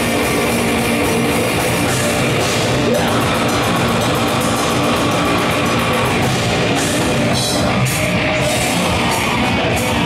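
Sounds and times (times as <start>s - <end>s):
heavy metal band playing live: 0.0s - 10.0s
rapid drum hits: 0.0s - 10.0s.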